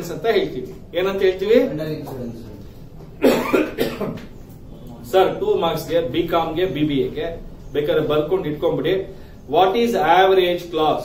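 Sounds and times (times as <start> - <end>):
man coughing: 3.2 - 4.2.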